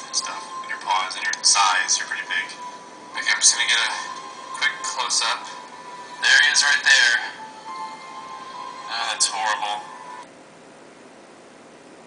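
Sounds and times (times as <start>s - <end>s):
phone speaker audio: 0.0s - 10.2s
faint room hiss: 0.0s - 12.0s.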